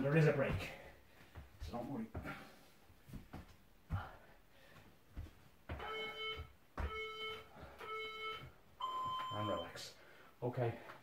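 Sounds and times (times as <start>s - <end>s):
hands and feet thumping on wooden floor: 0.2s - 7.4s
longer higher-pitched timer beep: 5.8s - 9.7s
timer beeps: 5.8s - 9.8s.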